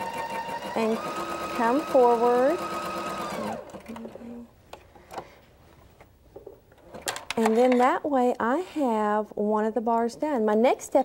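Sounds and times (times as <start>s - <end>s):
sewing machine motor whining: 0.0s - 4.1s.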